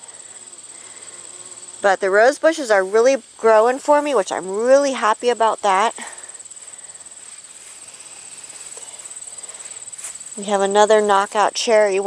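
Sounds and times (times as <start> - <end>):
high-pitched insect trill: 0.0 - 12.0.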